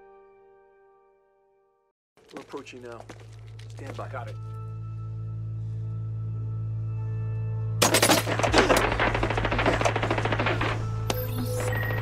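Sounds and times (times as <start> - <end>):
low music drone: 4.3 - 11.9.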